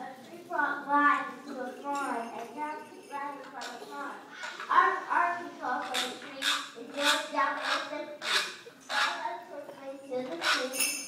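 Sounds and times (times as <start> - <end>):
children's voices in rhythm: 0.0 - 11.0.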